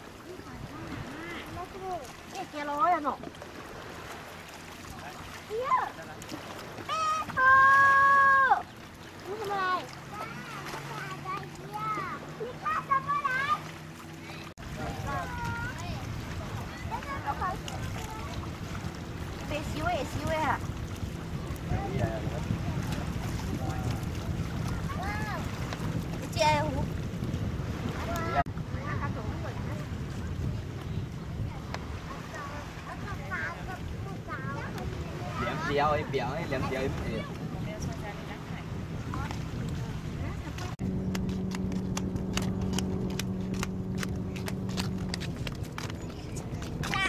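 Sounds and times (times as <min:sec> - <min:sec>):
wind buffeting microphone: 0:00.0 - 0:47.0.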